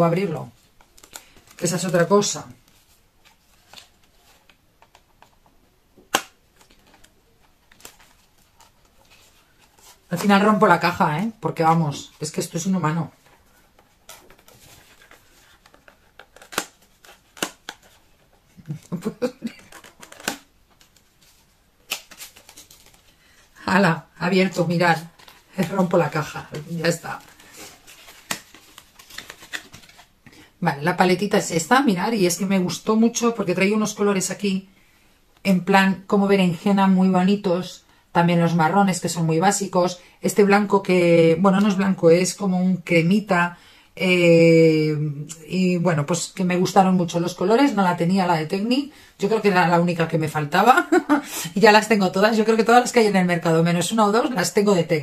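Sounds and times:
cardboard packaging crackling: 13.2 - 23.1, 24.9 - 30.3.

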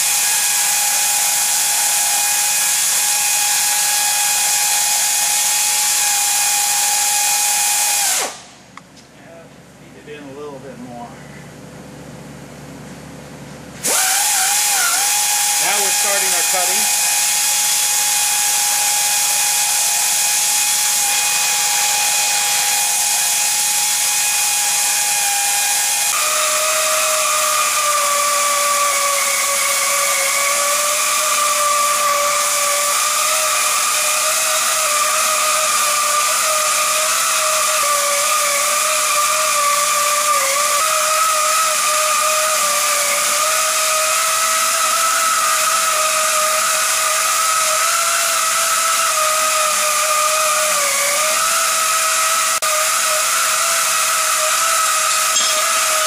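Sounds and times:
pneumatic pipe cutter hissing: 13.8 - 56.0.

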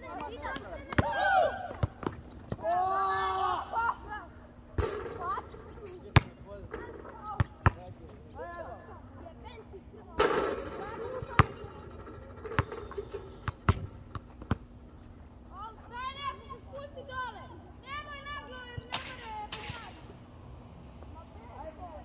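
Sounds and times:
basketball bouncing on hard court: 6.2 - 6.4, 7.4 - 7.8, 10.6 - 14.7.

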